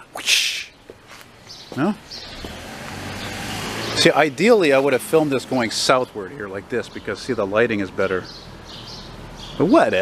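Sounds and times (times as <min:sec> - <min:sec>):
car approaching: 0:01.3 - 0:10.0.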